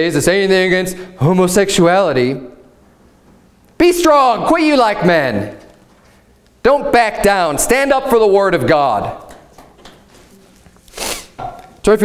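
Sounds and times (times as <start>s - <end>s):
page being turned: 10.1s - 11.4s.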